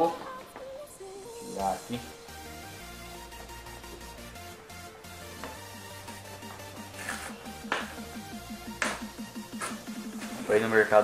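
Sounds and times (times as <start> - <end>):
electronic music: 0.0 - 11.0
packing tape ripped off box: 6.9 - 7.4.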